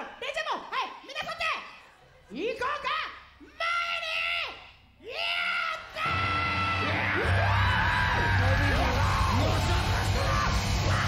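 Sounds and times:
heavy rock music: 6.1 - 11.0.

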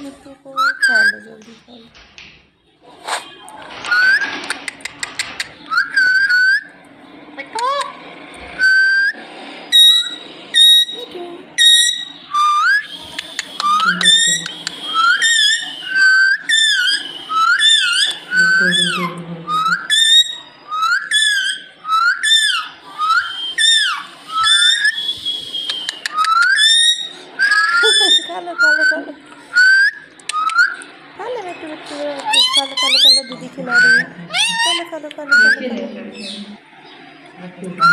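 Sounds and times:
parakeet whistled chirps: 0.6 - 1.3, 5.6 - 6.8, 8.6 - 30.9, 32.2 - 36.4.

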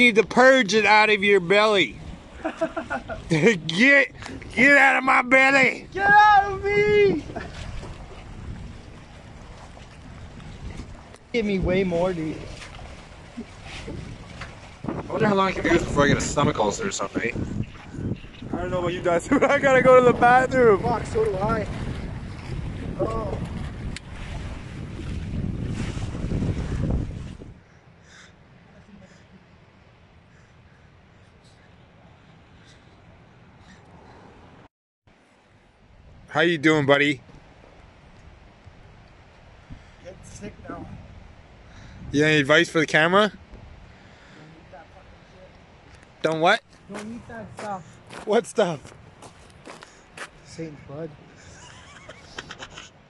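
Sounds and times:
wind buffeting microphone: 0.0 - 28.0, 37.2 - 44.3.

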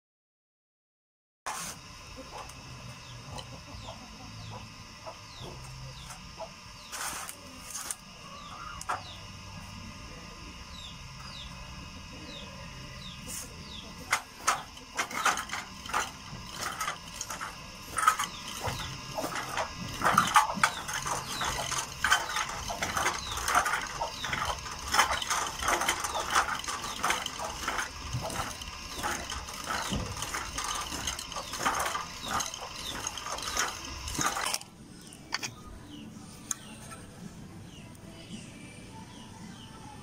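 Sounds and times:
drill spindle whirring: 13.0 - 35.5
pump drill clicking and rattling: 13.9 - 35.5.

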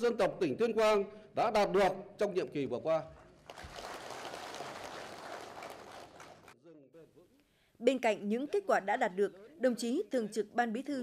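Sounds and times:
audience applauding: 3.2 - 6.6.

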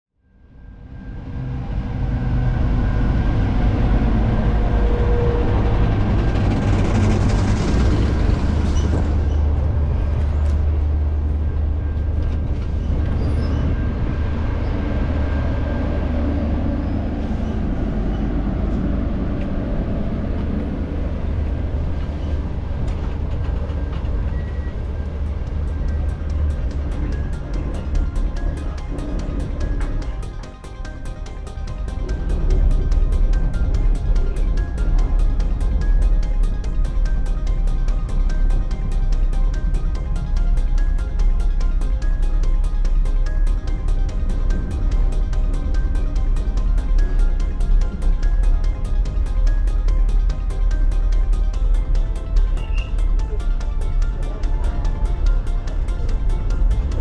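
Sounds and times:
music: 0.1 - 57.0
diesel train rumbling: 0.2 - 57.0
ticking beat in music: 25.3 - 57.0.

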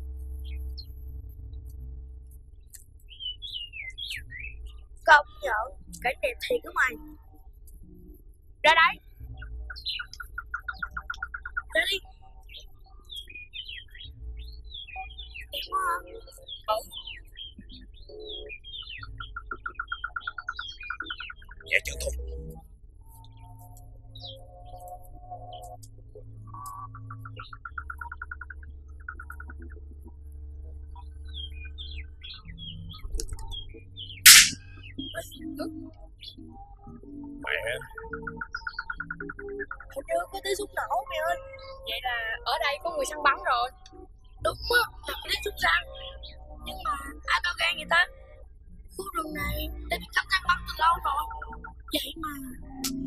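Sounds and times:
birds chirping: 2.6 - 7.2, 8.7 - 53.0.

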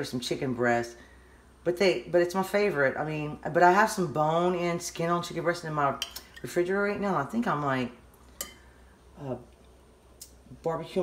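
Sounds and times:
metal spoon clinking ceramic bowl: 8.4 - 8.6.

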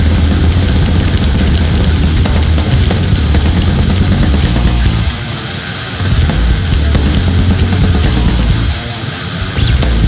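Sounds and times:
thrash metal band playing: 0.0 - 10.0.

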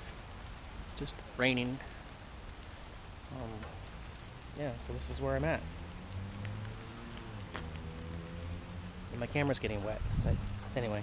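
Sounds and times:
light rain falling: 0.0 - 11.0
raindrops ticking on camera: 0.0 - 11.0.

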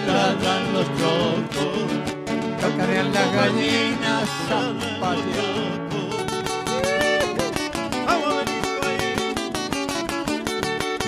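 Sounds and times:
acoustic guitars strummed: 0.0 - 11.0.

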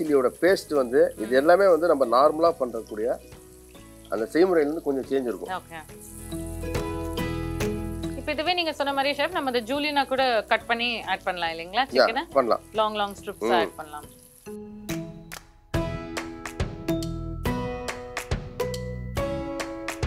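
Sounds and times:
chicken sizzling in hot oil: 0.0 - 15.3
background music: 0.0 - 20.0
person talking: 13.3 - 14.0.

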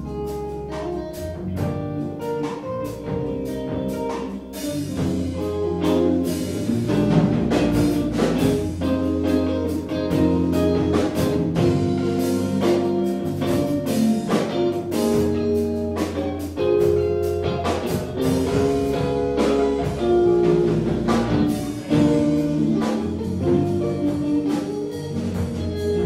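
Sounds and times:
drum kit beat: 0.0 - 26.0
electric bass: 0.0 - 26.0
electric guitar melody: 0.0 - 26.0.

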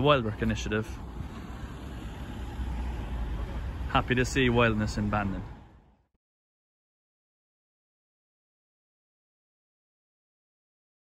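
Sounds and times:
passing vehicle rumble: 0.0 - 6.1.

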